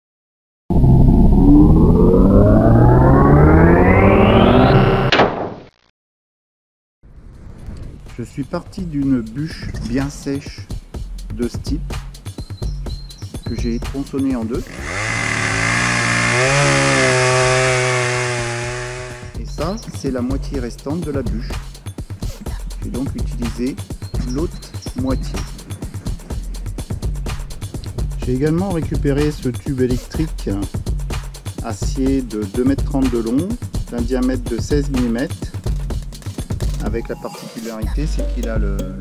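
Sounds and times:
electronic tones rising in pitch: 0:00.7 - 0:05.1
chainsaw cutting log: 0:14.6 - 0:19.4.

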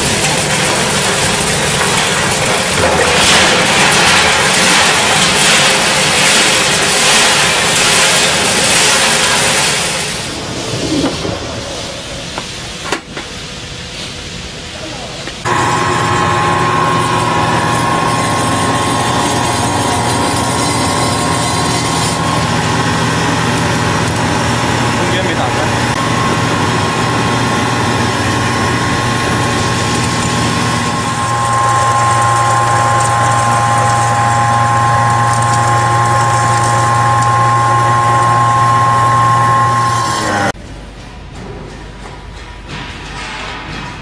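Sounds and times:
grinding mill whine and hum: 0:00.0 - 0:40.6.

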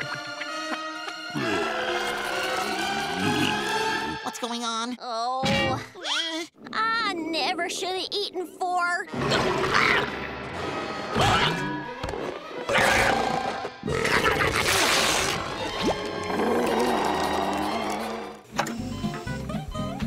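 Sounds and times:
background music: 0:00.0 - 0:05.0, 0:14.8 - 0:20.0
growls and grunts: 0:01.3 - 0:04.2, 0:16.2 - 0:18.4
cartoon transformation effects: 0:09.0 - 0:18.4.

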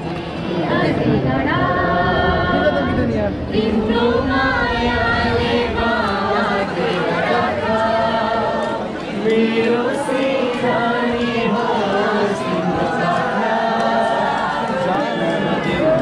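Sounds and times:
crowd chatter: 0:00.0 - 0:16.0
crowd singing: 0:00.0 - 0:16.0.

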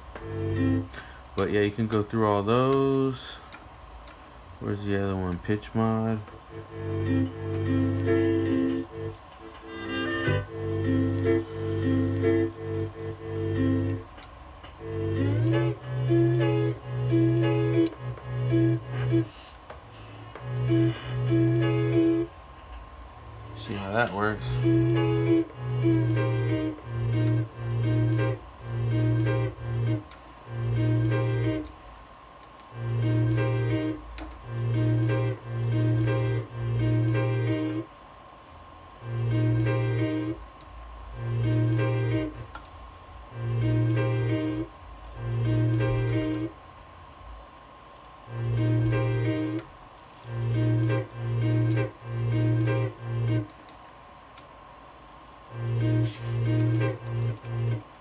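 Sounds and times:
sampler playing short held notes: 0:06.5 - 0:14.0, 0:14.8 - 0:18.9, 0:43.4 - 0:46.5, 0:50.3 - 0:53.5.

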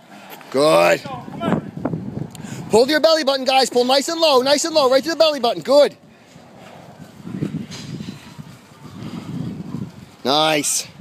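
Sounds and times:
vehicle rolling on asphalt rumble: 0:00.0 - 0:11.0.

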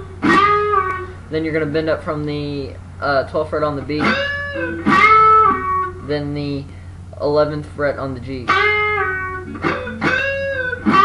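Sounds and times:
electric guitar string bend: 0:03.6 - 0:06.9, 0:08.2 - 0:11.0.

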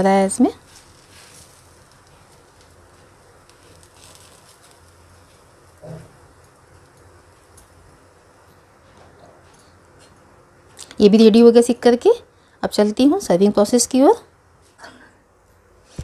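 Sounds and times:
bread sizzling on hot griddle: 0:00.0 - 0:09.0
steady low hum: 0:00.0 - 0:16.0.

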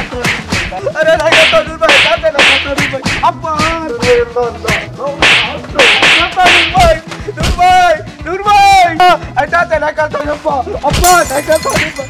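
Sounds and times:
slap-like hits: 0:00.0 - 0:03.8, 0:04.7 - 0:07.6.

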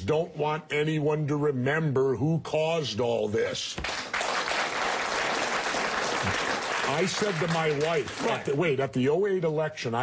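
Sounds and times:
audience applauding: 0:03.8 - 0:08.6
man talking: 0:06.8 - 0:10.0.

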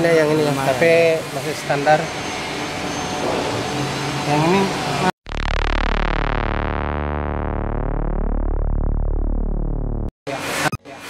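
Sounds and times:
steady rushing noise: 0:03.2 - 0:05.8.

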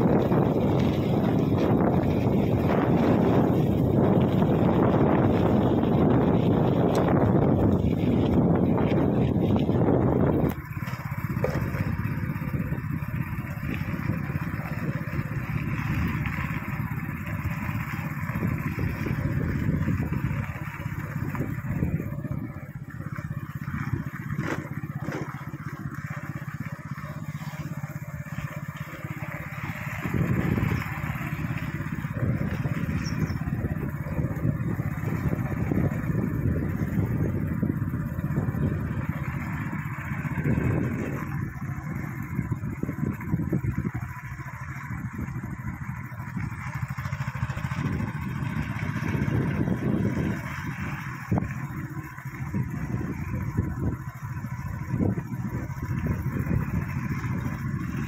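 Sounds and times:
motorcycle engine running: 0:00.0 - 0:58.0
wind rumble on microphone: 0:00.0 - 0:58.0.

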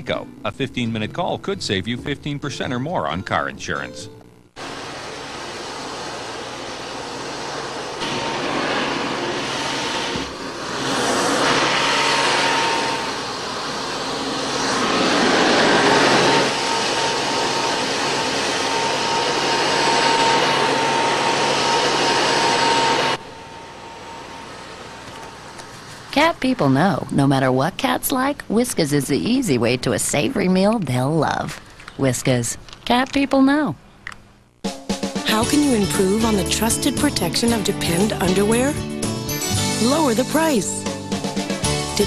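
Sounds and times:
vacuum cleaner whine: 0:04.6 - 0:26.2.

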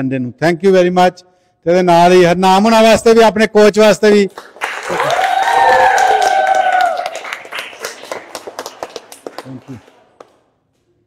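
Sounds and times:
children clapping: 0:04.3 - 0:10.6
children cheering: 0:04.8 - 0:09.9.

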